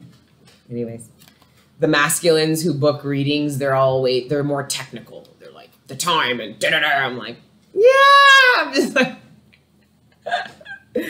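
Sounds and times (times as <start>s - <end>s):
woman laughing breathily: 10.2s - 11.0s.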